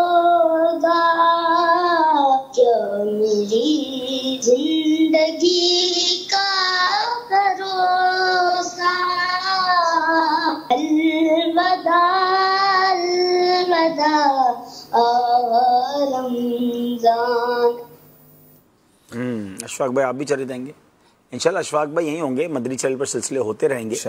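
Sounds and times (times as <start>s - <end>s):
person singing unaccompanied: 0.0s - 18.0s.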